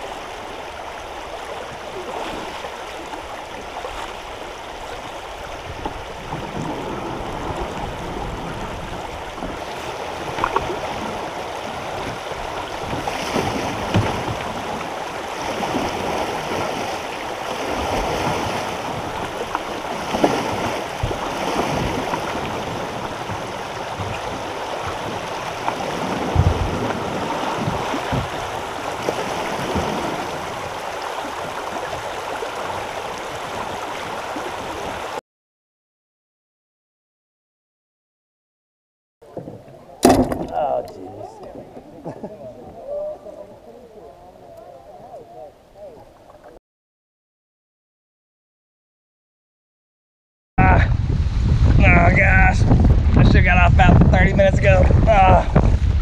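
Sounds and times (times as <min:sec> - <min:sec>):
kayak paddle splashing: 0:00.0 - 0:35.2, 0:39.2 - 0:46.6
sharp knocks: 0:40.0 - 0:40.7.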